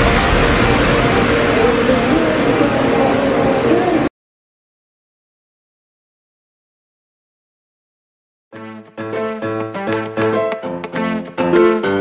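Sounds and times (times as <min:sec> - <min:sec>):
steady wash of noise: 0:00.0 - 0:04.1.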